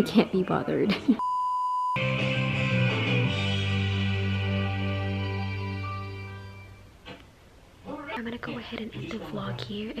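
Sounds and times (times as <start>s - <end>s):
background music: 2.0s - 7.0s.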